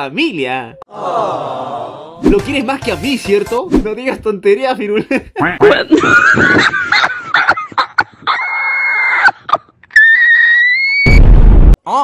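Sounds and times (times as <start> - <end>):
distorted noise blast: 11.1 - 11.8.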